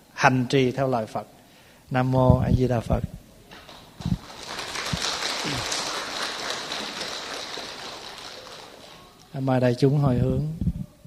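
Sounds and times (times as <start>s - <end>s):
audience applauding: 3.6s - 9.4s.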